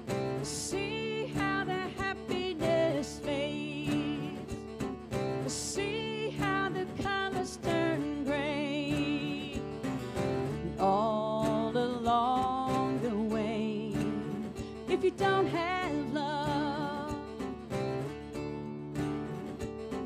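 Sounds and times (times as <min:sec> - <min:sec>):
acoustic guitar: 0:00.0 - 0:20.0
woman singing folk-pop song: 0:00.0 - 0:20.0.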